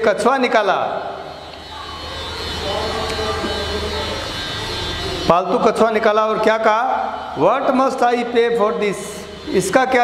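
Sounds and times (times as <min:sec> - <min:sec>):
steady mechanical drone: 0:00.0 - 0:10.0
low hum: 0:01.0 - 0:10.0.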